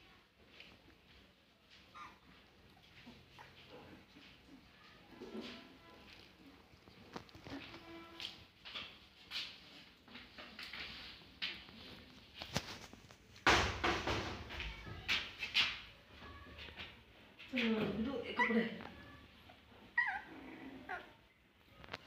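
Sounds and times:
puppies whining and squeaking: 1.8s - 6.2s, 18.3s - 21.4s.

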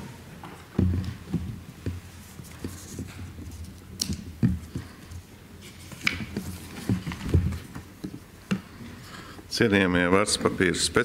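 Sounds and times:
papers being arranged: 0.0s - 8.8s.

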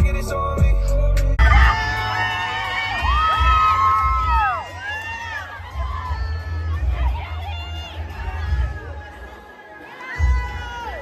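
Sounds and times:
dance music with heavy bass: 0.0s - 11.0s
hip-hop song: 0.0s - 11.0s
crowd screaming and cheering: 1.3s - 11.0s.

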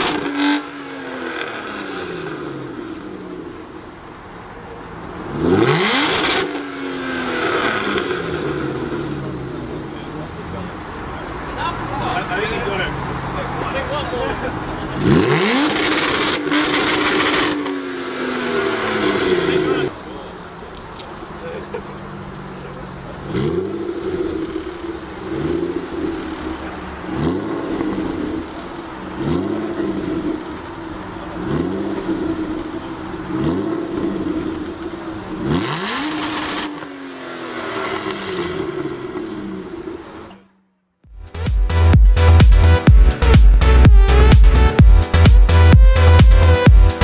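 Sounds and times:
car engine revving: 0.0s - 47.0s.

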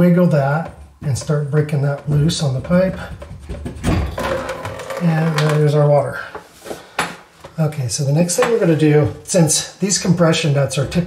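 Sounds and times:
knocks and scraping: 0.0s - 11.0s.

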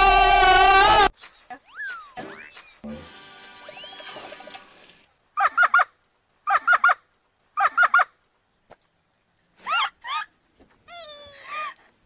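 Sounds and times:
sliding whistle effect: 0.1s - 2.8s, 3.6s - 4.4s
music: 2.8s - 4.6s
woman laughing: 5.4s - 5.9s, 7.6s - 8.1s, 9.6s - 10.3s.

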